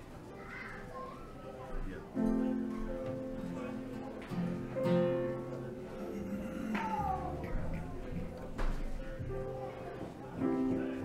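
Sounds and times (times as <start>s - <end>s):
steady low instrument tone: 5.4s - 8.5s.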